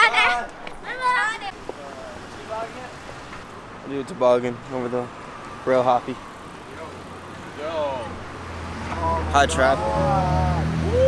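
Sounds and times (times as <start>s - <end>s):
people exclaiming: 0.0s - 1.4s, 9.1s - 11.0s
vehicle engine hum: 1.5s - 11.0s.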